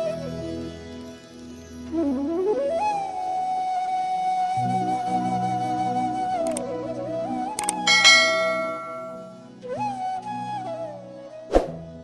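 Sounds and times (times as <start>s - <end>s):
soft flute music: 1.8s - 12.0s
bright bell chime: 7.8s - 9.4s.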